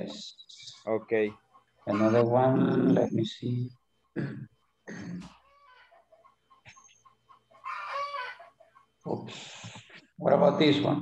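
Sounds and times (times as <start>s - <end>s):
animal calls: 0.0s - 3.2s, 5.0s - 9.2s.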